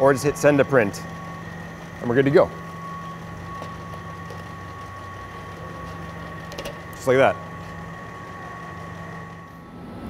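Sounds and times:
machinery humming: 0.0 - 10.0
thin high whine: 0.0 - 10.0.

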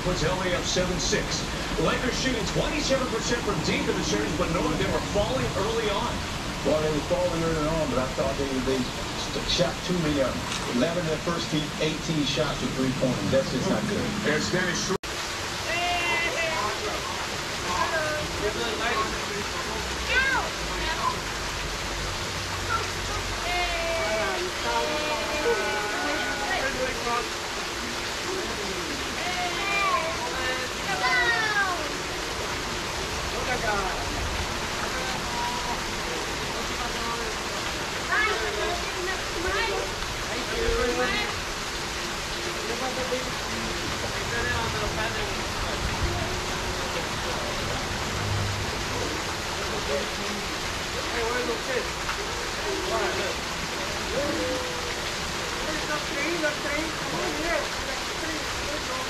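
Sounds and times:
indistinct voices talking: 0.0 - 21.4
water rushing from waterfall: 0.0 - 59.0.

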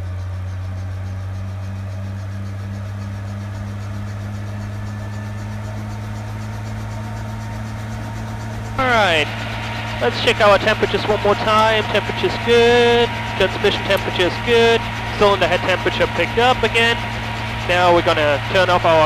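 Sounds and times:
helicopter engine and rotor running: 0.0 - 19.0.

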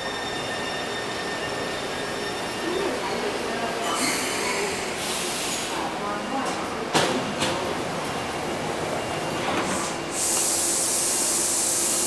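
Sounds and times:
loud hiss of air: 4.0 - 5.7, 9.8 - 12.0.

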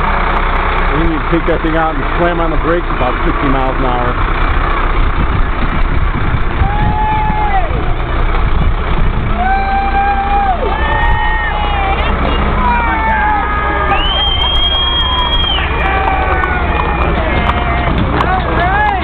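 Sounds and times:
fire engine rumbling: 0.0 - 19.0
crowd noise: 6.5 - 19.0.

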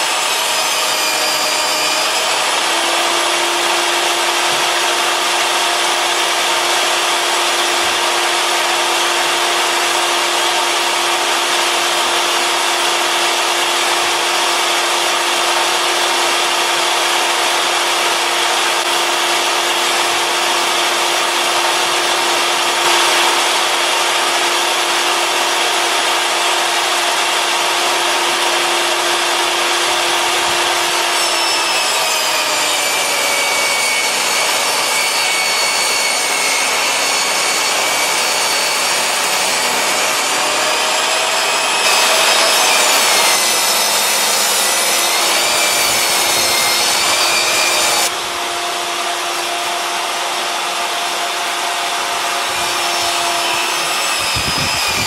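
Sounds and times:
table saw whine: 0.0 - 55.0.

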